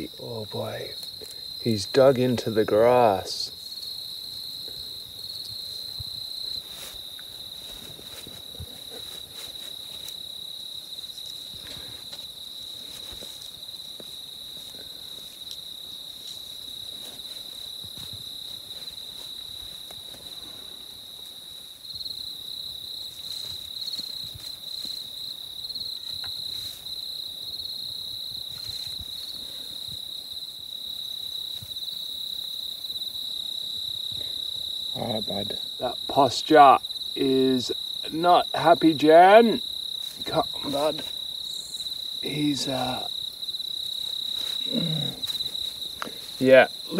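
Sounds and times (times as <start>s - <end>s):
crickets trilling: 0.0s - 46.9s.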